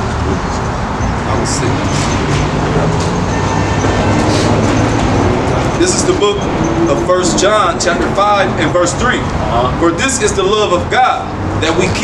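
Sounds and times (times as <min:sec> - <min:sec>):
heavy vehicle engine droning: 0:00.0 - 0:12.0
traffic noise: 0:00.0 - 0:12.0.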